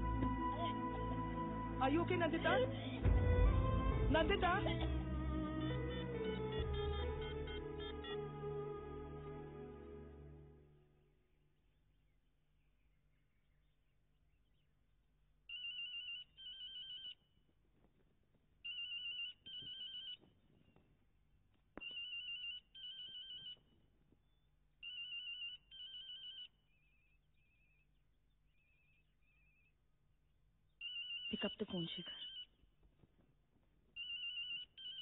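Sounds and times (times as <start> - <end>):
mobile phone ringing: 18.7 - 20.2, 24.8 - 26.5.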